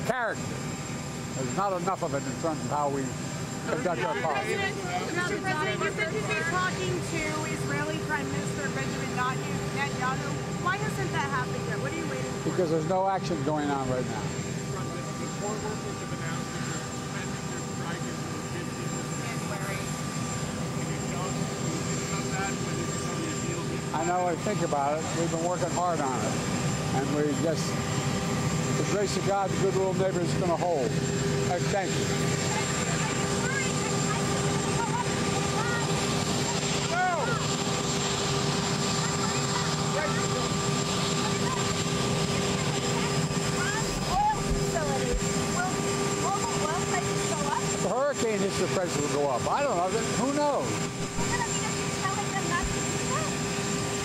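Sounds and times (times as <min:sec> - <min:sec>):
jet aircraft drone: 0:00.0 - 0:54.0.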